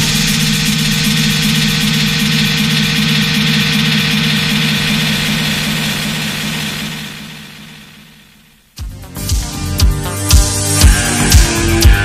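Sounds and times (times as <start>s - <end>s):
held low synth chord: 0.0s - 9.0s.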